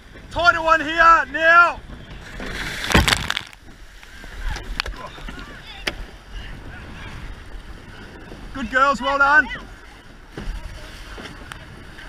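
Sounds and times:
surf rushing: 0.0s - 12.0s
water sloshing: 1.9s - 6.3s
oars knocking: 2.2s - 3.8s
loud water splash: 2.3s - 3.7s.

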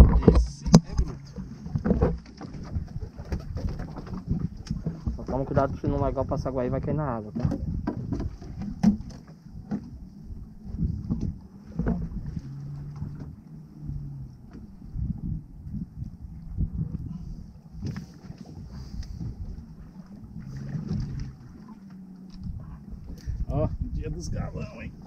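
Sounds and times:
water slapping against boat hull: 0.0s - 10.1s, 10.7s - 13.4s, 17.7s - 25.0s
wind on microphone: 0.0s - 25.0s.

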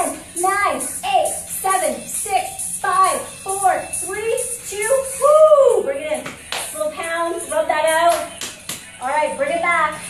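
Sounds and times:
sharp claps: 6.2s - 6.8s, 8.1s - 8.9s.

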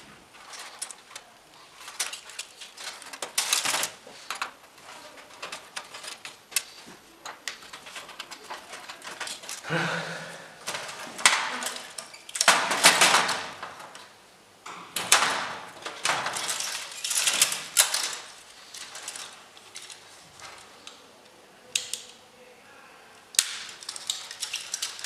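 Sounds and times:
rustle of loose wires: 0.0s - 9.7s, 10.5s - 14.2s, 15.0s - 22.2s, 23.4s - 25.0s
metal strip clinking against metal: 23.4s - 25.0s.

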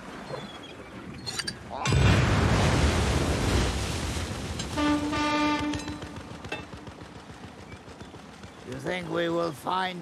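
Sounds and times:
low rumble of explosion: 1.9s - 4.6s
boat horn toot: 4.7s - 6.2s.

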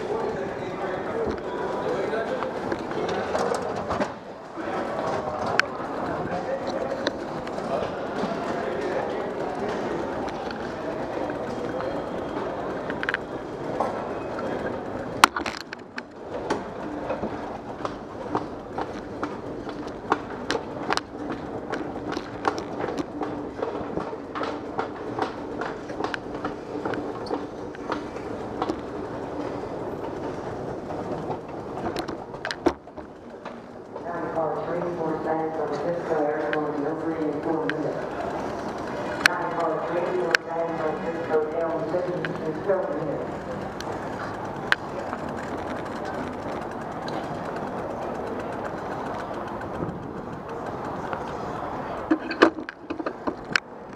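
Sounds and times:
escalator humming: 0.0s - 53.9s
escalator steps clicking: 0.0s - 53.9s
person speaking: 34.0s - 46.8s.

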